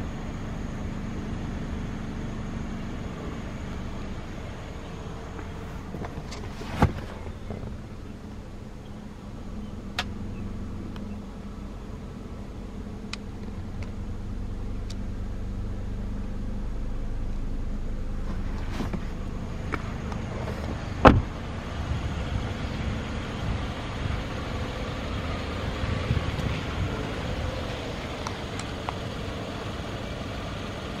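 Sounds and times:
car engine idling: 0.0s - 31.0s
loud thump: 21.0s - 21.4s.

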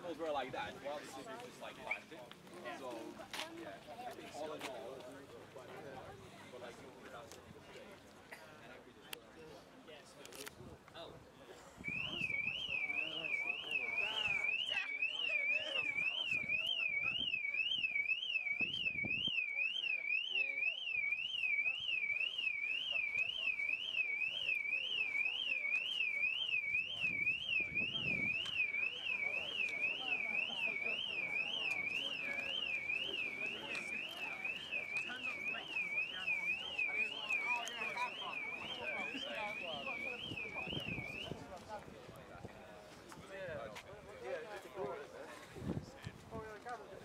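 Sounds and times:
faint voices: 0.0s - 47.0s
car alarm siren warbling: 11.9s - 41.3s.

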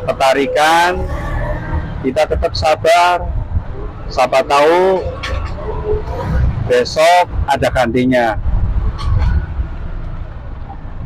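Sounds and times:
auto-rickshaw engine rumbling: 0.0s - 11.0s
road noise: 0.0s - 11.0s.

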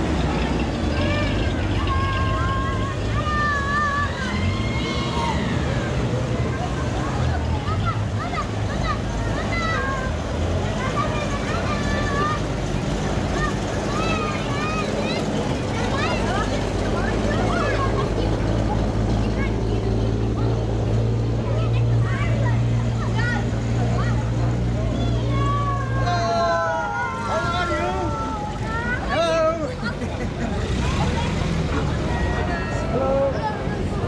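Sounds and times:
crowd voices: 0.0s - 34.0s
vehicle engines passing: 0.0s - 34.0s.

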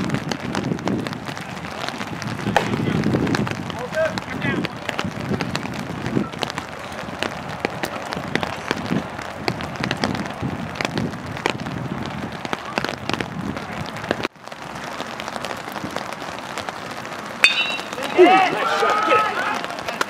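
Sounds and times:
light rain pattering: 0.0s - 20.0s
faint voices: 17.8s - 20.0s.

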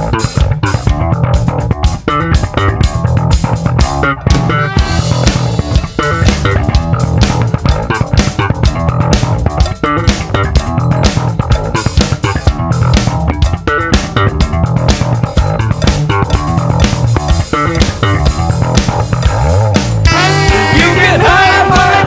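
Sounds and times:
electric bass line: 0.0s - 22.0s
funk band playing: 0.0s - 22.0s.

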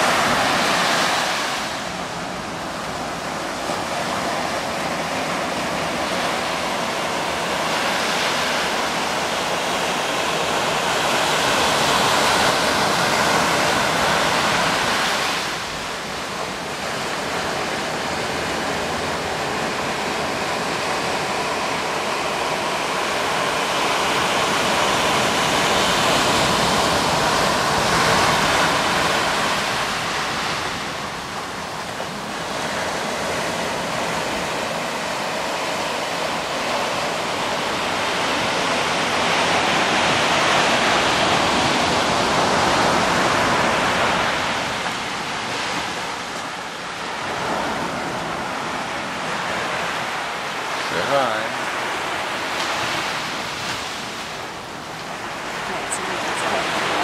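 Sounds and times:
ocean surf breaking on beach: 0.0s - 57.0s.

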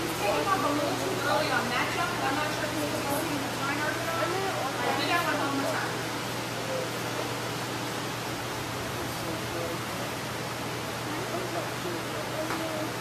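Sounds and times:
room noise hiss and hum: 0.0s - 13.0s.

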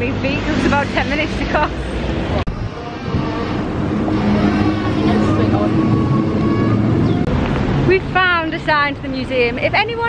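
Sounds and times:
highway traffic noise: 0.0s - 10.0s
held engine note: 0.4s - 7.5s.

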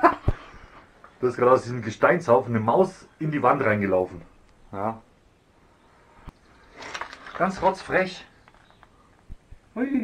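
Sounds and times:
man speaking: 1.2s - 5.1s.

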